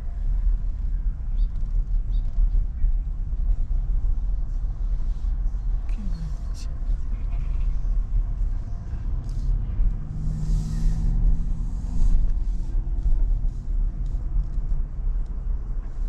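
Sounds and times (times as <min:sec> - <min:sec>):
car engine and road rumble: 0:00.0 - 0:16.0.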